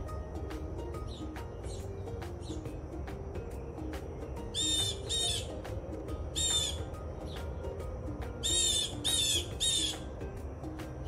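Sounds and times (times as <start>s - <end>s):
soft background music: 0.0s - 11.0s
blue jay squawking calls: 4.5s - 5.6s, 6.3s - 7.4s, 8.4s - 10.1s.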